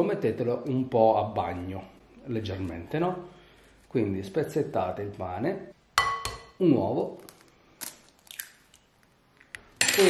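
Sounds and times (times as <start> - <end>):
eggshell crackling: 7.1 - 10.0.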